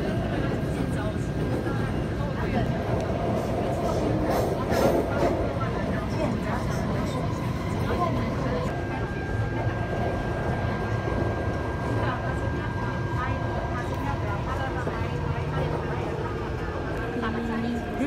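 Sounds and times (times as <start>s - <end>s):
metro train rumbling: 0.0s - 18.0s
passengers talking: 0.0s - 18.0s.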